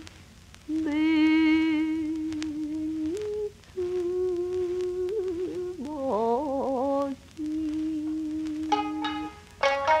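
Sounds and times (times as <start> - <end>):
old record song: 0.0 - 10.0.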